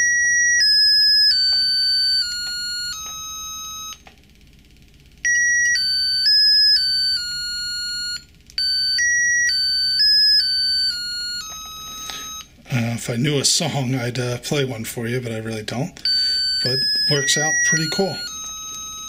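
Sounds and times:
piezo buzzer electronic notes: 0.0s - 13.0s, 16.0s - 19.0s.

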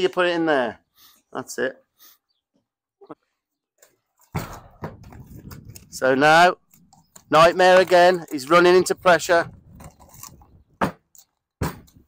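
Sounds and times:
hooves knocking on ramp and gravel: 3.8s - 12.0s.

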